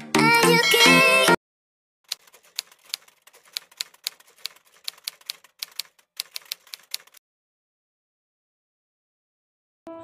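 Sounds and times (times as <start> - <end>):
typewriter key clacks: 2.1 - 7.2.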